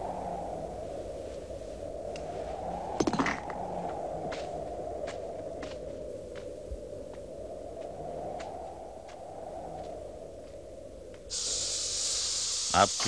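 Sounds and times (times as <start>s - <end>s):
faint footfalls: 3.8s - 11.3s
snake hissing: 11.3s - 13.0s.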